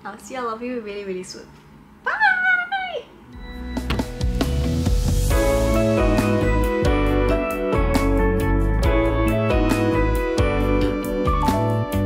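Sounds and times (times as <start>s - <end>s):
woman saying bye: 2.0s - 3.2s
outro music: 3.4s - 12.0s.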